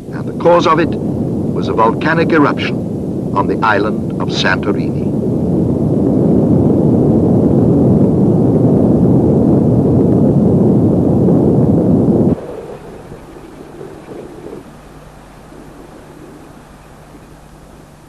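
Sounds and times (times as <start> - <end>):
faint steady hum: 0.0 - 18.0
deep explosion rumble: 4.9 - 18.0.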